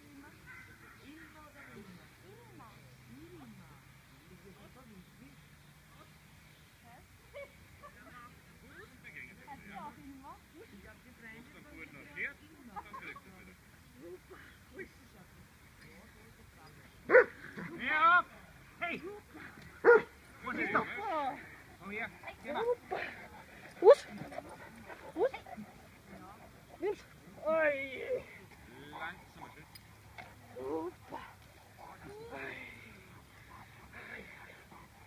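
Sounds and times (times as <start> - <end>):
dog barking: 17.1 - 17.4, 19.8 - 20.1, 23.8 - 24.1.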